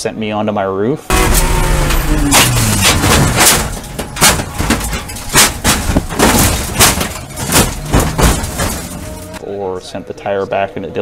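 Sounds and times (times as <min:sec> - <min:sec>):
car engine roaring: 0:01.1 - 0:09.4
sharp exhaust cracks: 0:01.1 - 0:09.4.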